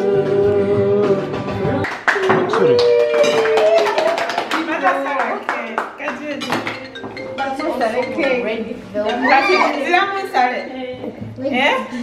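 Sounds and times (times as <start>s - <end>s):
group of people singing: 0.0s - 1.9s
hand claps: 1.8s - 6.8s.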